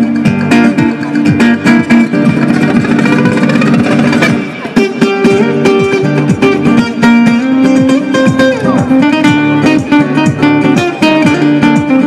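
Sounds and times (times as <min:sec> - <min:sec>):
fast acoustic guitar playing: 0:00.0 - 0:12.0.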